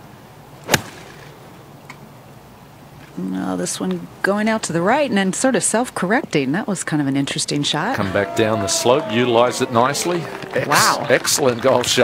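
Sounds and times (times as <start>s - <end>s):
golf club striking ball: 0.6s - 1.4s.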